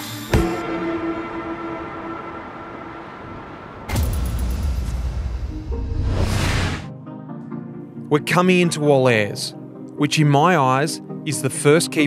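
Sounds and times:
loud logo sting hit: 0:00.3 - 0:06.9
low rumbling noise: 0:00.6 - 0:06.9.

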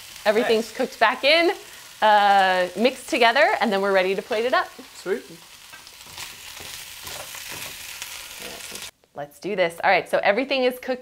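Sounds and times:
food sizzling in a frying pan: 0:00.0 - 0:09.0
spatula scraping: 0:05.7 - 0:08.9.

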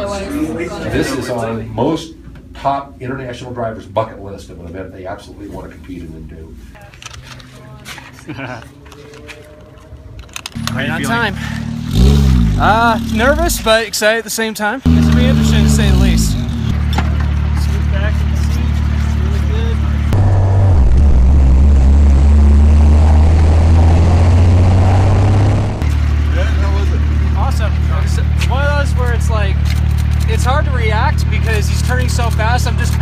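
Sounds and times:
race car engine drone: 0:07.0 - 0:13.7, 0:14.9 - 0:33.0.

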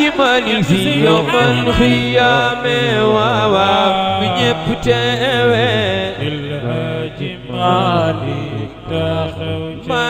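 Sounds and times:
man chanting religious song: 0:00.0 - 0:10.0.

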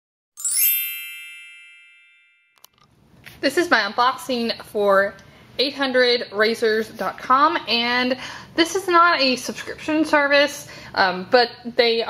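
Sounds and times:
bright chime ding: 0:00.4 - 0:02.8.

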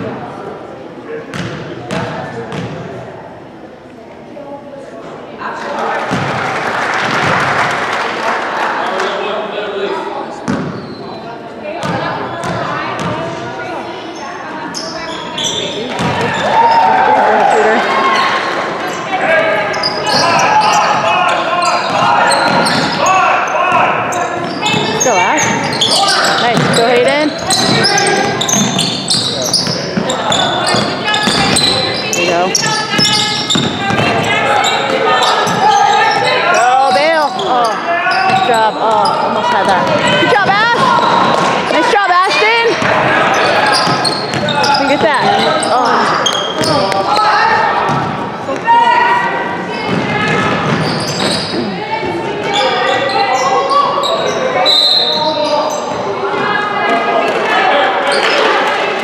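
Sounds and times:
sneakers squeaking: 0:01.3 - 0:02.9, 0:06.1 - 0:06.4, 0:10.4 - 0:57.3, 0:58.0 - 0:58.6
people shouting: 0:16.2 - 0:18.5, 0:39.4 - 0:50.7
basketball bouncing on wooden floor: 0:26.5 - 0:28.8, 0:29.6 - 0:31.6, 0:32.6 - 0:34.2, 0:49.9 - 0:51.4.

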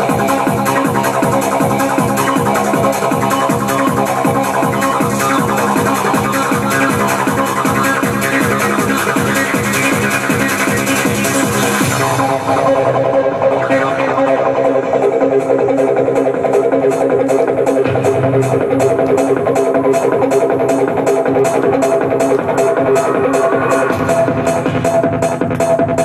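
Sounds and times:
electronic dance music: 0:00.0 - 0:26.0
fast hi-hat pattern: 0:00.0 - 0:26.0.

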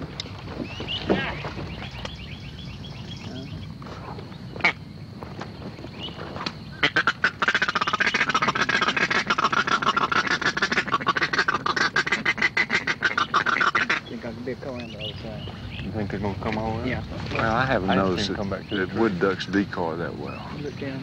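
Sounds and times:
ducks quacking: 0:04.0 - 0:04.8, 0:06.8 - 0:16.4.

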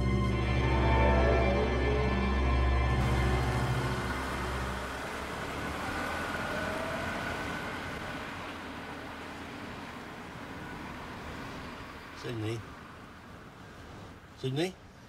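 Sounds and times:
music: 0:00.0 - 0:05.0
car driving away: 0:00.0 - 0:14.3.

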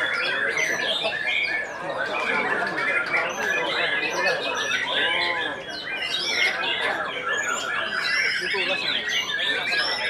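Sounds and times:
birds whistling and chirping: 0:00.0 - 0:10.0.

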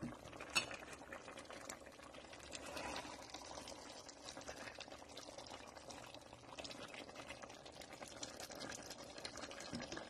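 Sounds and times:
stew bubbling in a pot: 0:00.0 - 0:10.0.

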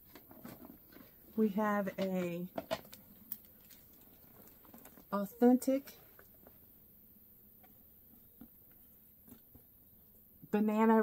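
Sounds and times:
soft rustles: 0:00.0 - 0:05.2.

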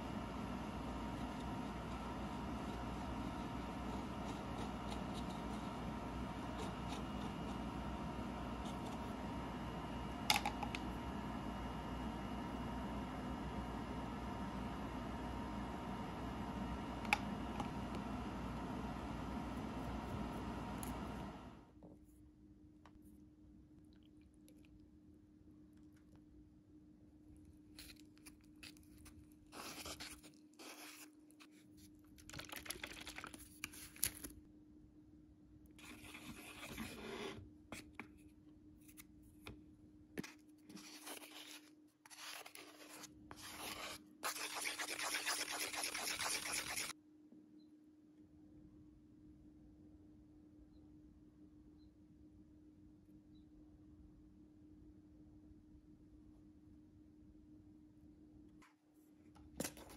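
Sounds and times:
resin being scraped: 0:00.0 - 0:09.4, 0:40.8 - 0:46.9
steady low hum: 0:00.0 - 0:21.7
stir stick clicking on plastic cup: 0:10.3 - 0:10.9.

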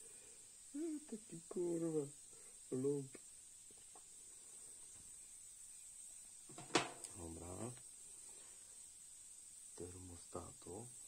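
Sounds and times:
faint ticks: 0:07.0 - 0:07.9.

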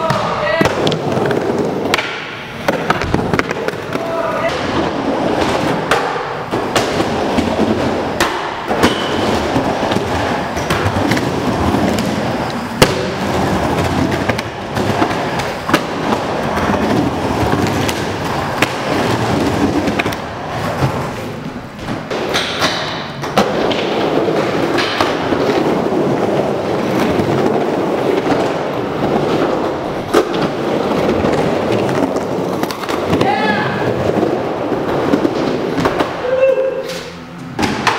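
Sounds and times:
skateboard wheels rolling on wood: 0:00.0 - 0:37.9
skateboard clacking on surface: 0:21.8 - 0:36.2.

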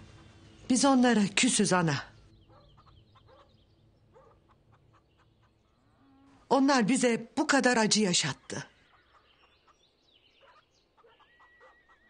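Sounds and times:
bird chirps: 0:02.0 - 0:06.5, 0:08.3 - 0:12.0.

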